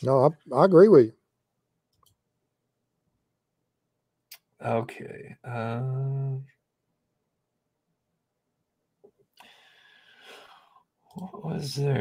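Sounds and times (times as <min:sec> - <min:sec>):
man speaking: 0:00.0 - 0:01.2, 0:04.6 - 0:06.5, 0:11.2 - 0:12.0.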